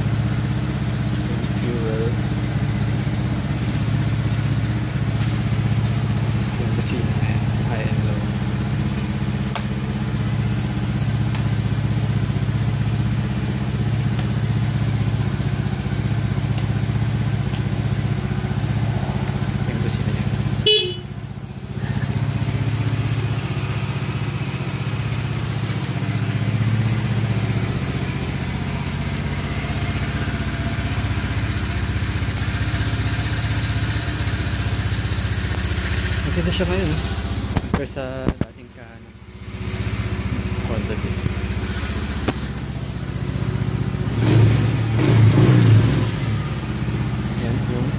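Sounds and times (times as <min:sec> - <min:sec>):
scooter engine idling: 0:00.0 - 0:47.9.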